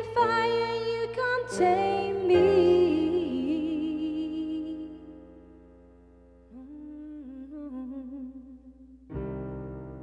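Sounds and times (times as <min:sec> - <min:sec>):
woman humming: 0:06.5 - 0:09.1.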